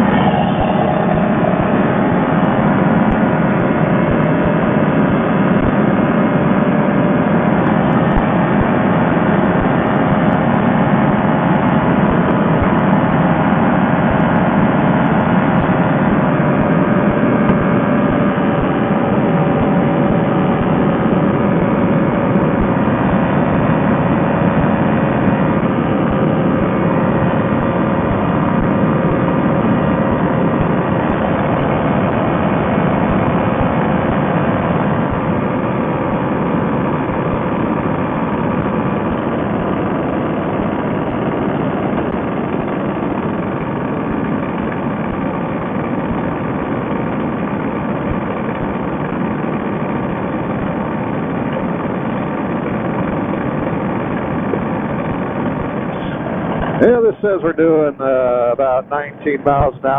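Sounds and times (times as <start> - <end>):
paramotor engine drone: 0.0 - 59.9.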